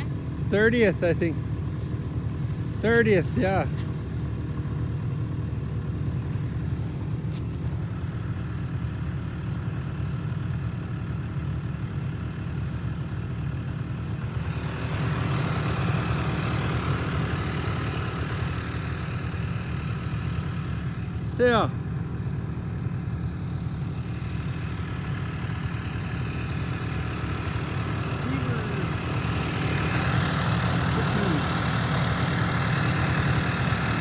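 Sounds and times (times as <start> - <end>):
snowmobile engine idling: 0.0 - 34.0.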